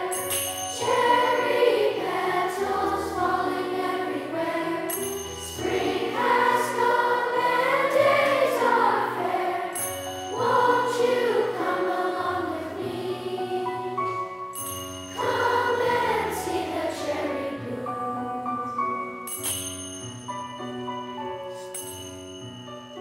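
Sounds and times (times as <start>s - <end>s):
bright high tinkle: 0.0s - 12.0s, 13.8s - 16.8s, 19.0s - 23.0s
children's choir singing: 0.0s - 14.5s, 15.1s - 19.3s.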